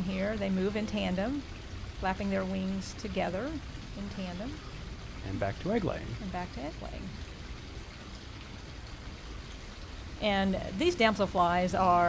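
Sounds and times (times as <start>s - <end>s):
creek water running: 0.0s - 12.0s.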